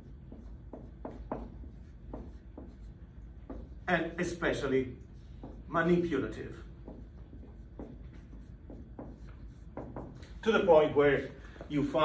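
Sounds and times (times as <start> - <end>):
low room hum: 0.0 - 12.0
marker writing on whiteboard: 0.0 - 12.0.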